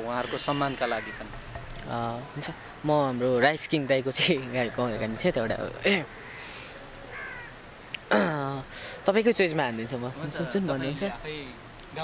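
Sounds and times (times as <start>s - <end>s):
crow cawing: 0.0s - 1.5s, 6.0s - 7.6s.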